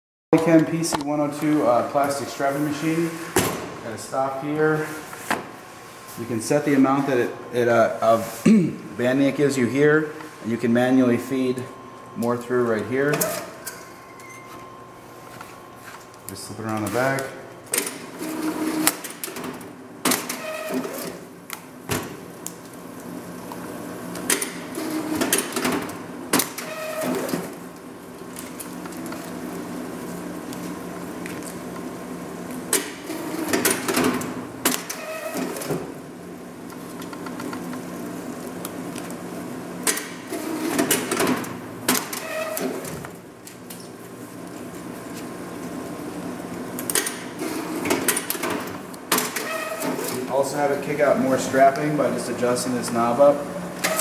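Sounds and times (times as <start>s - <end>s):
strapping machine whirring and clicking: 16.6s - 22.5s, 24.1s - 29.4s, 32.5s - 36.0s, 39.8s - 43.8s, 46.7s - 50.4s, 53.8s - 54.0s.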